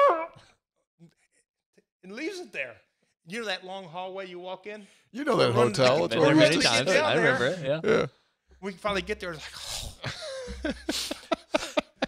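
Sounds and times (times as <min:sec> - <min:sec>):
man's high-pitched vocal squeal: 0:00.0 - 0:00.5.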